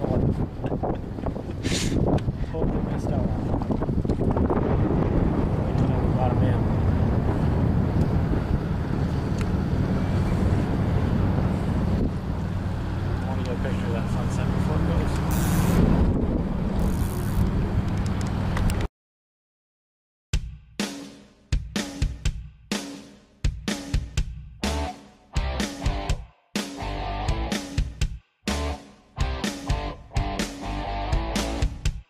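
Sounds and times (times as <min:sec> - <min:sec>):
wind buffeting microphone: 0:00.0 - 0:18.7.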